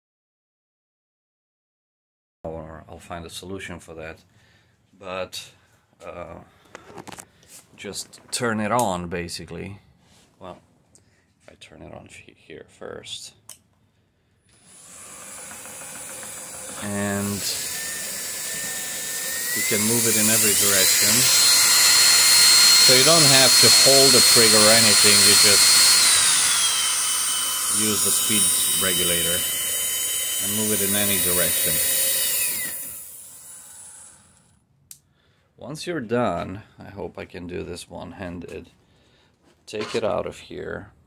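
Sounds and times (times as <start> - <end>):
cordless drill winding down: 14.5 - 34.6
motor whine and propeller hiss: 14.6 - 34.5.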